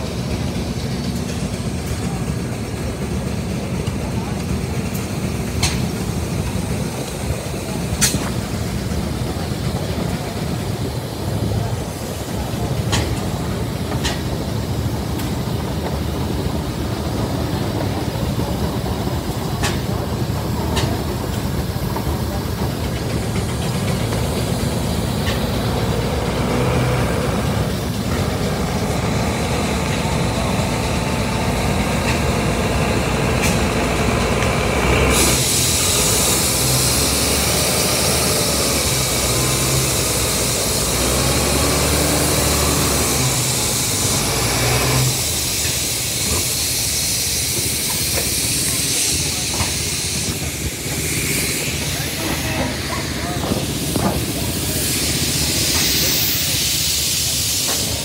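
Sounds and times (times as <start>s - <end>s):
loud steam hiss: 0.0s - 58.0s
steam engine low rumble: 0.0s - 58.0s.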